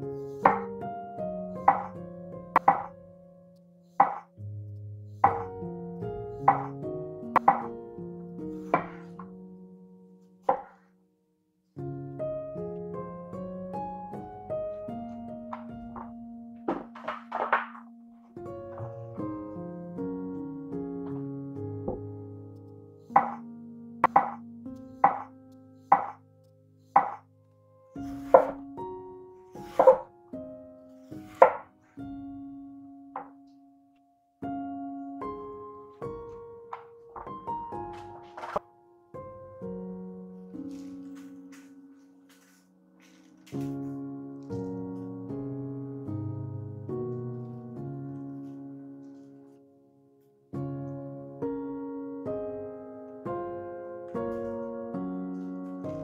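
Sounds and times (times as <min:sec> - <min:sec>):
background music: 0:00.0 - 0:10.7, 0:11.9 - 0:34.0
knife striking wooden board: 0:00.5 - 0:00.7, 0:01.7 - 0:01.9, 0:02.6 - 0:02.9, 0:04.0 - 0:04.3, 0:05.2 - 0:05.5, 0:06.5 - 0:06.8, 0:07.4 - 0:07.7, 0:08.8 - 0:09.3, 0:10.5 - 0:10.8, 0:16.7 - 0:17.8, 0:23.2 - 0:23.4, 0:24.0 - 0:24.4, 0:25.0 - 0:25.3, 0:25.9 - 0:26.2, 0:27.0 - 0:27.2, 0:28.1 - 0:28.6, 0:29.6 - 0:30.1, 0:31.2 - 0:31.7
knife slicing potato: 0:28.0 - 0:28.6, 0:29.6 - 0:30.1.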